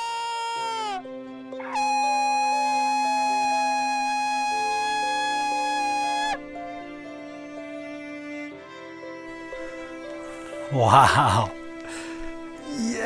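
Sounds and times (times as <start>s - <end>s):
ram's horn blasts: 0.0s - 6.7s
soft background music: 0.1s - 13.0s.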